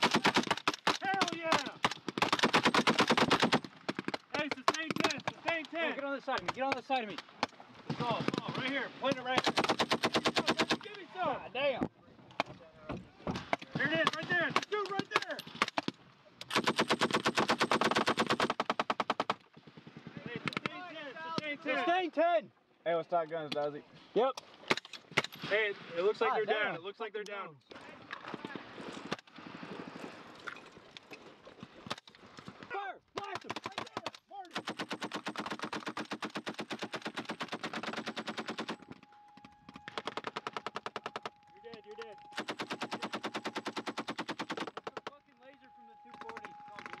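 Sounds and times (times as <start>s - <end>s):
machine gun firing continuous burst: 0.0s - 5.1s, 9.4s - 10.8s, 16.5s - 20.0s, 33.4s - 38.9s, 42.3s - 45.1s.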